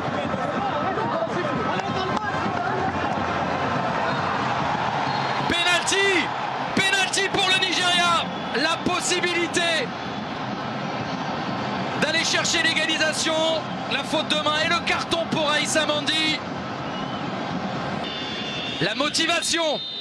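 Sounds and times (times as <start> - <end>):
crowd shouting: 0.0 - 18.1
stadium crowd din: 0.0 - 20.0.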